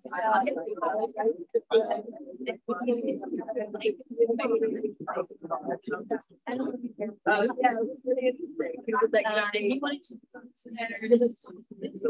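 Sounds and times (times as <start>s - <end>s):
people talking indistinctly: 0.0s - 12.0s.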